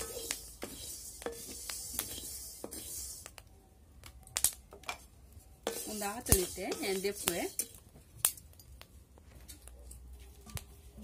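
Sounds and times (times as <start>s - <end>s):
spatula scraping a steel pan: 0.0s - 3.4s, 5.6s - 7.8s.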